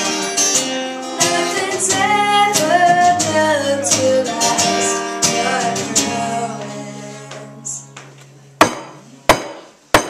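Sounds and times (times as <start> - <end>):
strummed acoustic guitar chord: 0.0 - 8.1
person singing: 1.2 - 8.0
sharp percussive knocks: 8.6 - 10.0.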